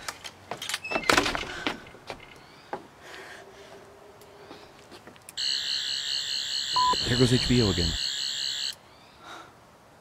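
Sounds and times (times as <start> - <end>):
electronic buzzing tone: 5.4 - 8.8
short pure beep: 6.7 - 8.0.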